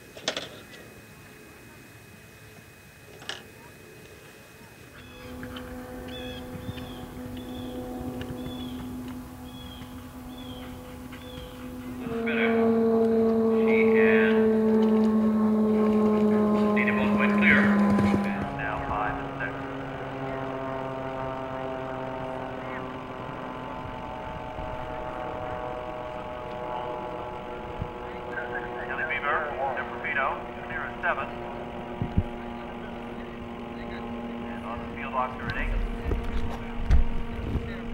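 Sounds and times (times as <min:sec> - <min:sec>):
faint voices: 0:00.0 - 0:37.9
low motor-like drone: 0:00.0 - 0:37.9.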